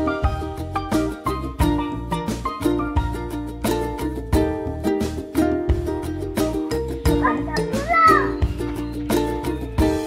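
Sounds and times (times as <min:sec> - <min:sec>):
upbeat music with plucked strings: 0:00.0 - 0:10.0
child calling out: 0:07.2 - 0:08.4.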